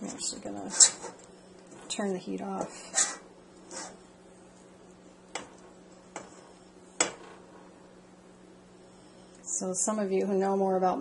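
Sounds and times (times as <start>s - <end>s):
faint steady hum: 0.0s - 11.0s
spatula stirring chocolate: 0.1s - 4.8s.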